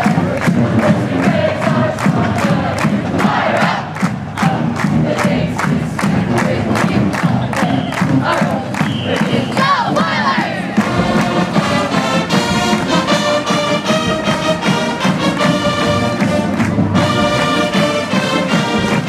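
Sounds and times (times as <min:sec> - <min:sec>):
crowd cheering and chanting: 0:00.0 - 0:19.0
marching drumline cadence: 0:00.0 - 0:19.0
brass band playing: 0:06.3 - 0:19.0.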